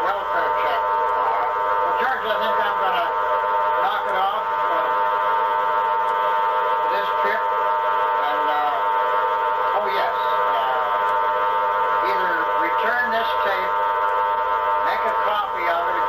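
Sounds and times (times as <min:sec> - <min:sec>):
electronic drone of fixed tones: 0:00.0 - 0:16.0.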